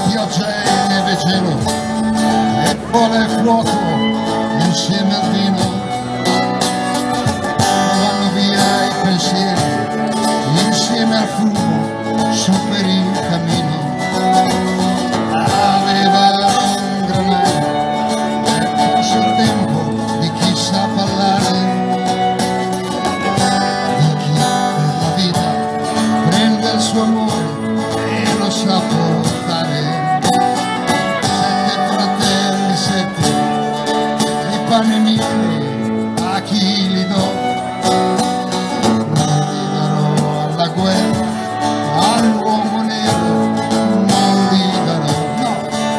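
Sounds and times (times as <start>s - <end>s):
live band with violin and guitars: 0.0s - 45.9s
person singing: 0.0s - 45.9s.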